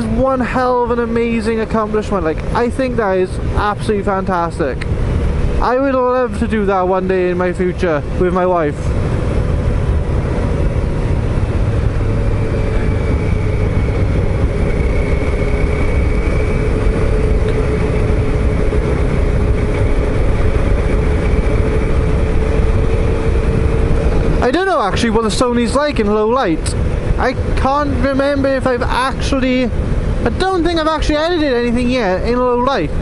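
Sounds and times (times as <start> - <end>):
motorcycle engine cruising: 0.0 - 33.0
wind rush on microphone: 0.0 - 33.0.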